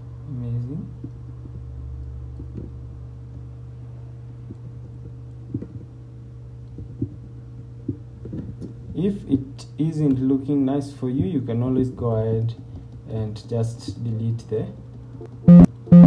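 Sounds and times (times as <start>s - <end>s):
low electrical hum: 0.0s - 16.0s.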